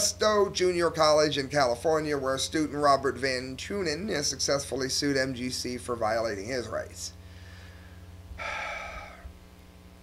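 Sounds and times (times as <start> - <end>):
man breathing in: 7.2 - 9.4.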